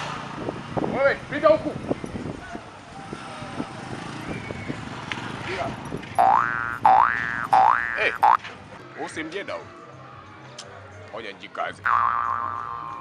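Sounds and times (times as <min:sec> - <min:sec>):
faint street background: 0:00.0 - 0:13.0
comic boing sound effect: 0:06.2 - 0:08.4, 0:11.9 - 0:13.0.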